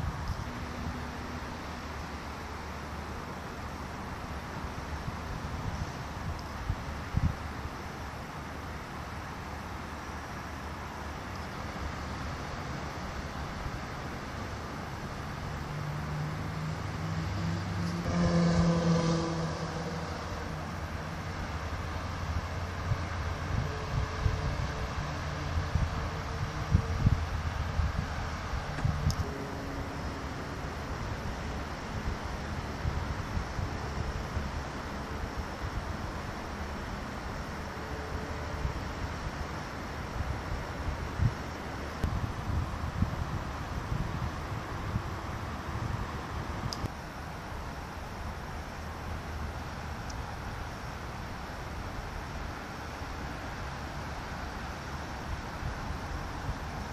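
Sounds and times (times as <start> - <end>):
distant road traffic hiss: 0.0 - 56.9
wind buffeting microphone: 5.1 - 7.6, 21.9 - 30.2, 40.1 - 47.0
vehicle passing close by: 15.2 - 35.2.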